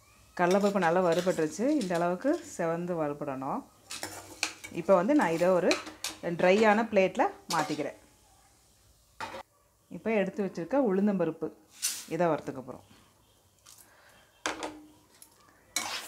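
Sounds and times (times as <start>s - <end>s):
metal ladle scraping metal pan: 0.4s - 2.7s, 3.8s - 6.9s, 7.5s - 8.0s, 15.8s - 16.0s
woman talking: 0.4s - 3.6s, 4.8s - 8.0s, 9.9s - 12.9s.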